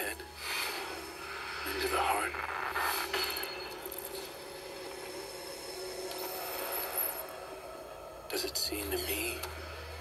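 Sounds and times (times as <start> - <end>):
low drone: 0.2 - 10.0.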